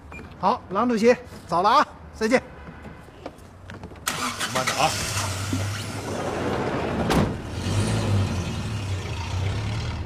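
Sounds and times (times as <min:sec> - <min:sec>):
sliding van door slamming: 0:05.7 - 0:08.2.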